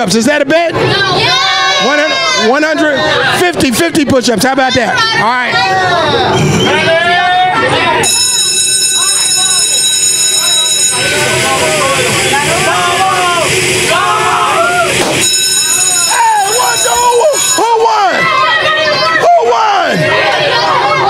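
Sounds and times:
children shouting and cheering: 0.8s - 3.6s, 4.4s - 15.2s, 15.8s - 21.0s
high electronic buzzing tone: 8.0s - 17.8s.

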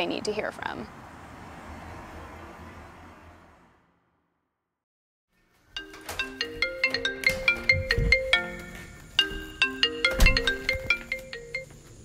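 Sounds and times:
marimba phone ringtone: 5.8s - 11.7s.

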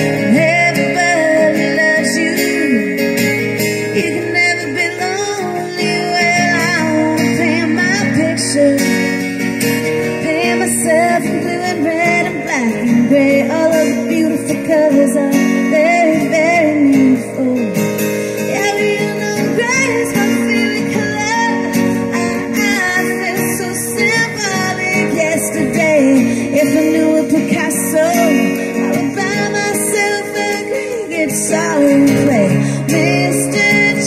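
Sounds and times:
strummed acoustic guitar: 0.0s - 34.0s
woman singing: 0.0s - 34.0s.

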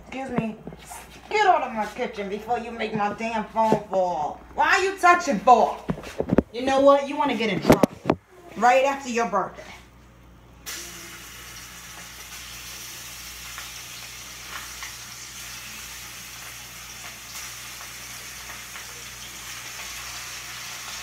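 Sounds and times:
food sizzling in hot oil: 10.7s - 21.0s.

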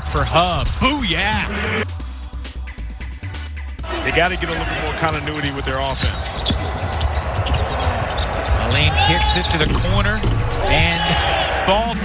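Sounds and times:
commentator talking: 0.0s - 1.8s, 3.8s - 6.5s, 8.5s - 12.0s
players moving on court: 4.0s - 11.6s
basketball bouncing on hardwood: 6.0s - 11.0s.

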